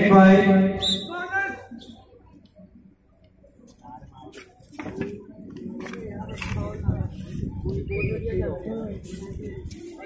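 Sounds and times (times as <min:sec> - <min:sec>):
people talking indistinctly: 0:00.8 - 0:10.0.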